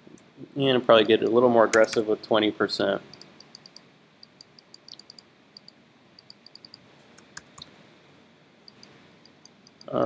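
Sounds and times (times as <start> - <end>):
faint room hiss: 0.0 - 10.0
computer mouse clicks: 3.1 - 7.7, 8.7 - 9.9.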